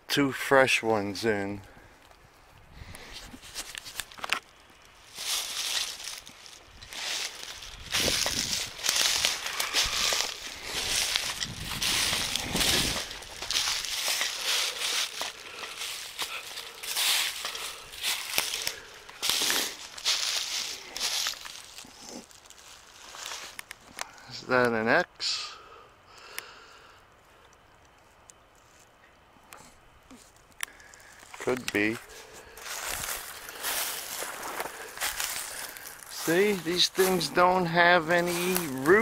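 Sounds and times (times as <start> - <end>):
footsteps crunching dry leaves: 2.9 - 24.0, 30.1 - 39.0.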